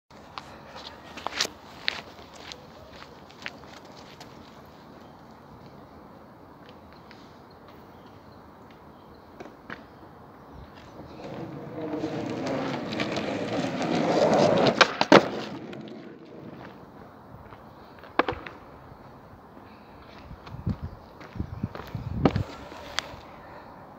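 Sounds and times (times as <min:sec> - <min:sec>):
footsteps on asphalt: 0:00.2 - 0:05.8, 0:10.6 - 0:23.2
skateboard wheels rolling on asphalt: 0:00.2 - 0:23.4.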